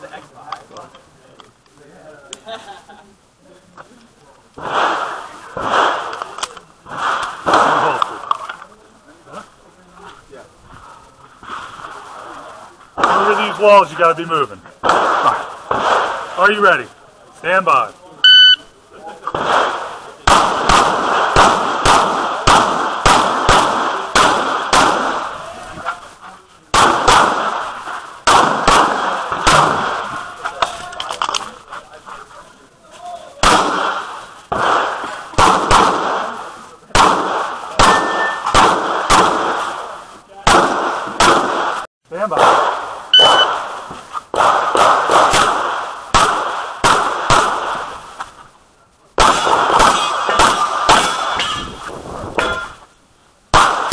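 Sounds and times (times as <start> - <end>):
pistol shots: 4.6 - 8.3, 13.0 - 16.7, 19.3 - 25.4, 26.7 - 30.5, 33.4 - 48.0, 49.2 - 51.8, 53.5 - 53.9.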